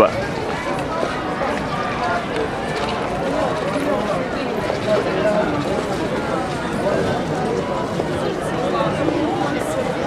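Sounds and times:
people talking at once: 0:00.0 - 0:10.0
street noise: 0:00.0 - 0:10.0.

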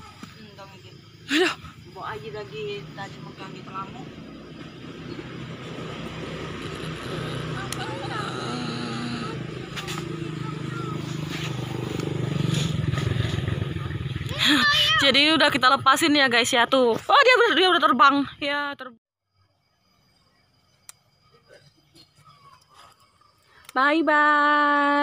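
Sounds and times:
motor engine running: 0:00.0 - 0:16.1.

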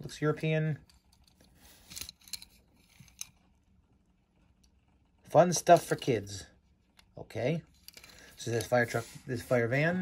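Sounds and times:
toy handling clicks and rubs: 0:00.8 - 0:03.6, 0:07.7 - 0:09.6.

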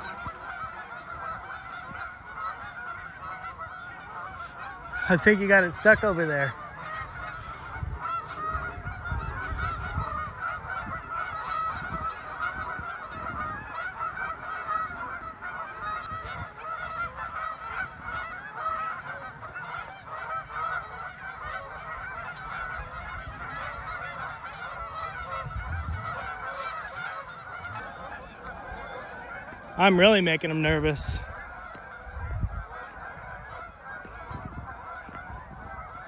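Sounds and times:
geese honking: 0:00.0 - 0:36.0.

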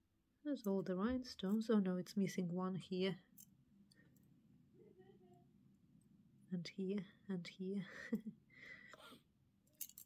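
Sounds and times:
jewellery pieces clicking together: 0:09.7 - 0:10.0.

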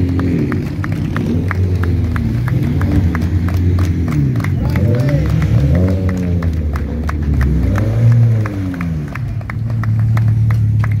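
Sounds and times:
race car engine revving: 0:00.0 - 0:11.0
rhythmic hand clapping: 0:00.0 - 0:11.0.

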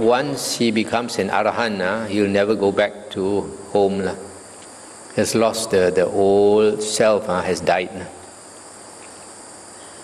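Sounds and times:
night insects chorus: 0:00.0 - 0:10.0.

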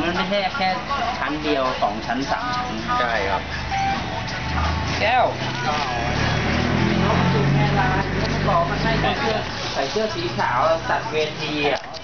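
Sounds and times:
people talking: 0:00.0 - 0:03.5, 0:04.5 - 0:12.0
vehicle engine humming: 0:02.3 - 0:11.4.

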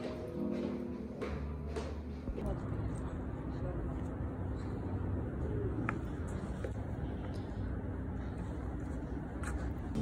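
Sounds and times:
footsteps: 0:00.0 - 0:02.5
steady low rumble: 0:02.3 - 0:10.0.

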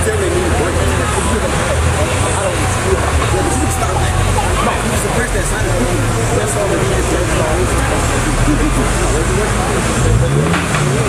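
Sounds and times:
car engine revving: 0:00.0 - 0:11.0
people talking: 0:00.0 - 0:11.0.

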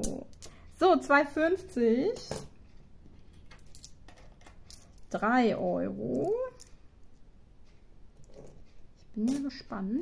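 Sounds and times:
coins clicking when stacked: 0:03.3 - 0:05.1.

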